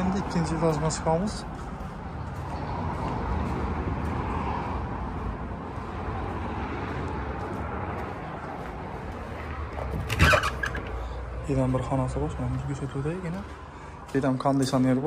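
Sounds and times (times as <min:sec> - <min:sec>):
road traffic rumble: 0:00.0 - 0:15.0
vehicle passing: 0:00.0 - 0:15.0.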